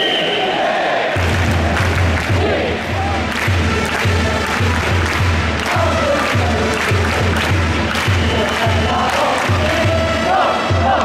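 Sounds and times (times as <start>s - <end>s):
crowd chanting in unison: 0.0s - 11.0s
drum beaten steadily: 1.2s - 11.0s.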